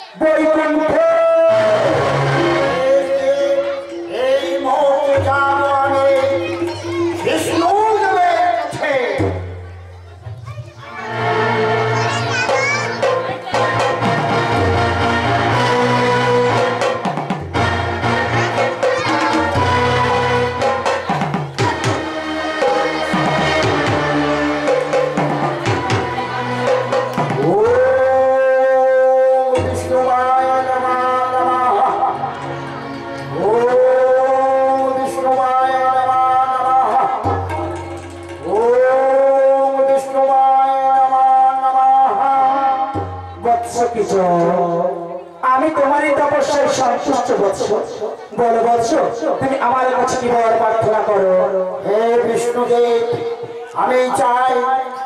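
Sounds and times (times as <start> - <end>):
man singing into a microphone: 0.0 - 9.3, 27.4 - 32.4, 33.3 - 37.6, 38.4 - 55.0
music with held notes: 1.4 - 40.2.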